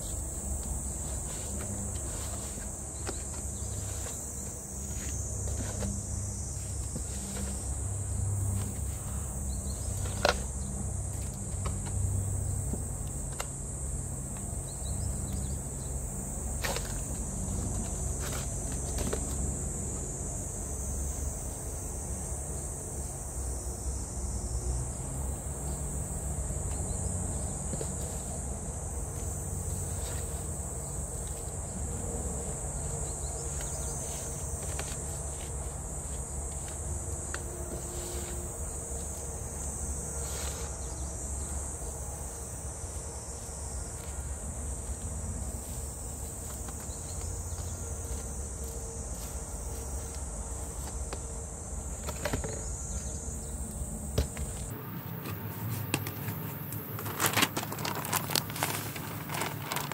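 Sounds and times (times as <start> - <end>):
insects chirring: 0.0 - 59.9.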